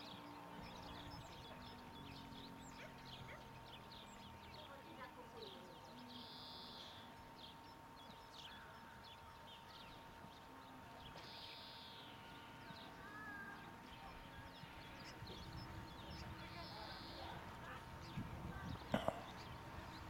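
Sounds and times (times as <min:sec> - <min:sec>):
birds chirping: 0:00.0 - 0:20.0.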